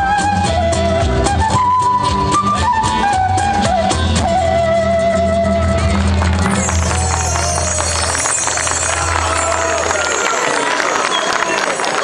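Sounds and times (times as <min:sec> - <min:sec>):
crowd voices: 0:01.6 - 0:12.0
scattered clapping: 0:05.8 - 0:12.0.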